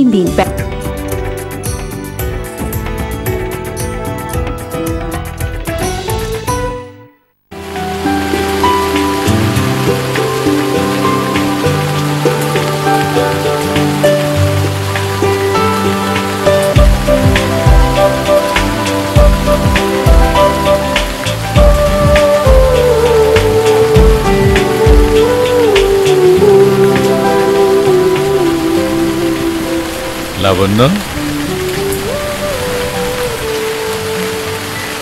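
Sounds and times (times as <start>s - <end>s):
rain falling: 0.0s - 6.4s, 7.5s - 35.0s
background music sustained notes: 0.0s - 35.0s
low beat: 16.8s - 26.2s.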